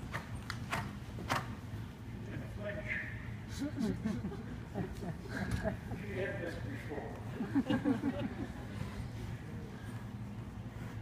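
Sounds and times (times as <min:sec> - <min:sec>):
horse hooves on arena footing: 0:00.0 - 0:01.8.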